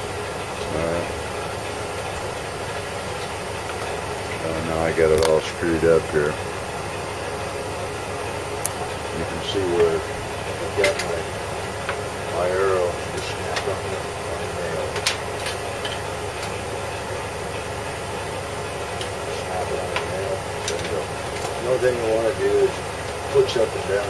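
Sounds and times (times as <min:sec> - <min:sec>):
steady background hum: 0:00.0 - 0:24.0.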